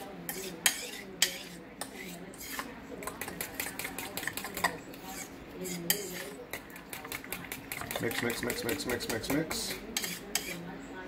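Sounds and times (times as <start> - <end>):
fork stirring batter in a bowl: 0.0 - 10.7.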